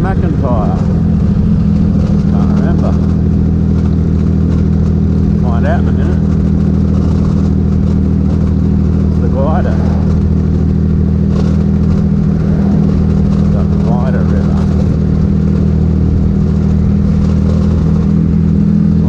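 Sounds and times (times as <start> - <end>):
motorcycle engine cruising: 0.0 - 19.0
wind noise: 0.0 - 19.0.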